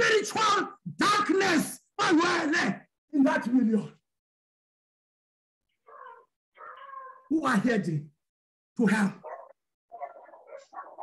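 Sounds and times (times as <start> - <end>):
man speaking: 0.0 - 4.0, 8.8 - 9.4
dog crying high-pitched: 5.9 - 7.3.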